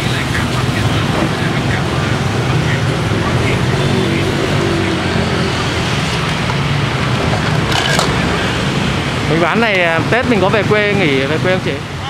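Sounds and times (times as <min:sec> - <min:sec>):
motorbike and car engines passing: 0:00.0 - 0:12.0
street traffic noise: 0:00.0 - 0:12.0.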